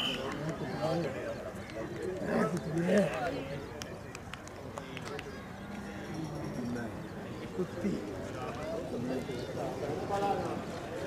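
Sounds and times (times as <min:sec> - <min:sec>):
men talking and calling: 0:00.0 - 0:11.0
murmur of background chatter: 0:00.0 - 0:11.0.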